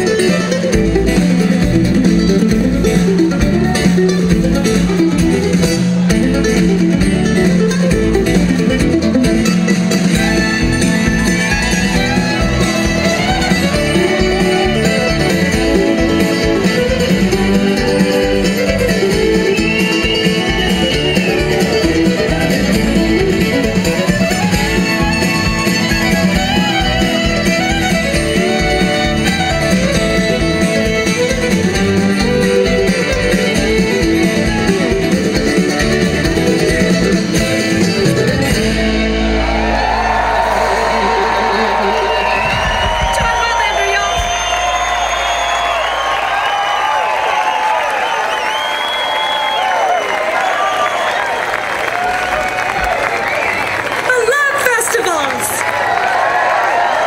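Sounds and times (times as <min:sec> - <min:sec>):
audience applause and cheering: 0:00.0 - 0:57.0
bluegrass band playing: 0:00.0 - 0:57.0.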